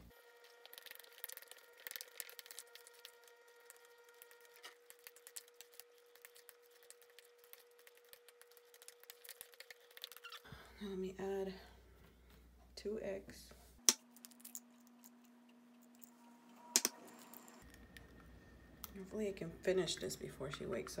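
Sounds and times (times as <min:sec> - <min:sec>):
faint steady hum: 0:00.0 - 0:21.0
bananas being mashed: 0:00.3 - 0:10.5.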